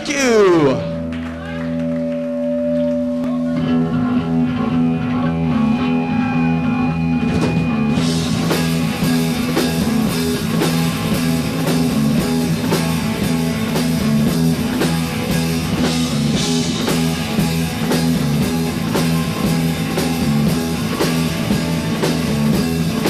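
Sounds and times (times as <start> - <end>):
heavy metal band playing live: 1.8 - 23.0
drum kit with cymbals: 7.2 - 23.0.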